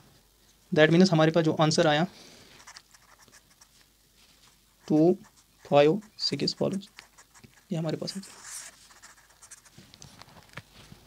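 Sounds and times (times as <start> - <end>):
marker scratching on paper: 2.6 - 3.8, 4.5 - 9.8.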